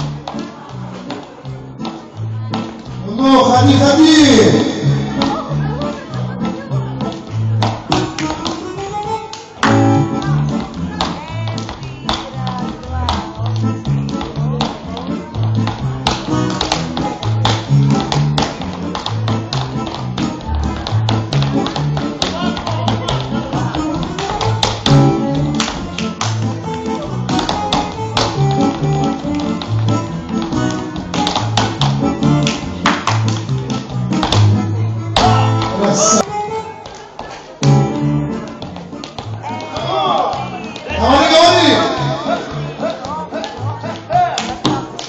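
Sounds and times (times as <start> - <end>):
lively dance music: 0.0 - 45.0
hands slapping legs: 20.9 - 30.0, 30.6 - 34.5, 42.9 - 45.0.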